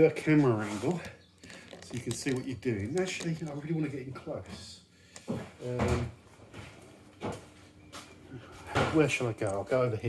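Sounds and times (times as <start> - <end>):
camera knocks and clatters: 1.4 - 3.6
man's wordless voiced sound: 5.6 - 6.2.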